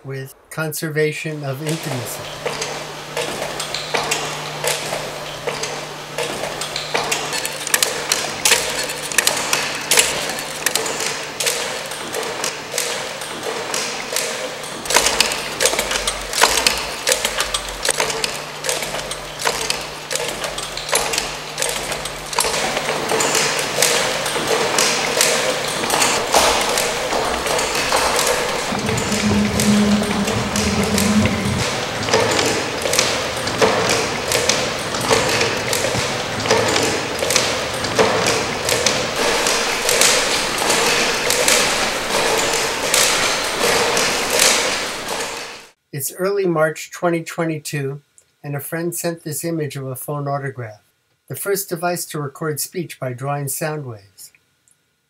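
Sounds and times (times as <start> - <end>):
wooden parts clattering and clicking: 3.2 - 45.6
low steady hum: 21.8 - 37.7
short low tone: 28.7 - 32.0.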